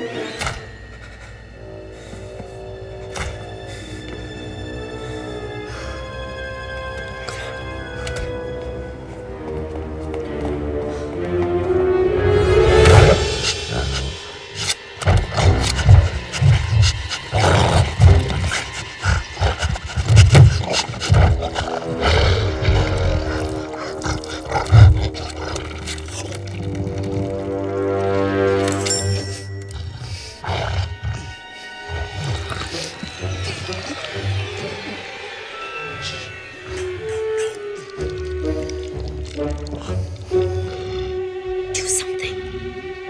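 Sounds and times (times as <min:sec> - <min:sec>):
suspenseful orchestral music: 0:00.0 - 0:43.0
monster snarling and roaring: 0:12.4 - 0:27.6, 0:30.4 - 0:41.2.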